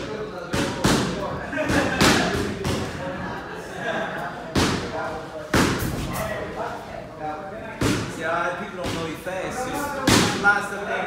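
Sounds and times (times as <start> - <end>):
punches thudding in boxing gym: 0.0 - 3.1, 4.5 - 6.2, 7.8 - 10.5.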